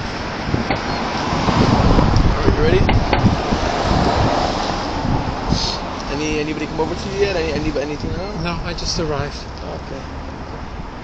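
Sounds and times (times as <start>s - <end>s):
street traffic passing: 0.0s - 11.0s
wind rumbling on microphone: 0.0s - 11.0s.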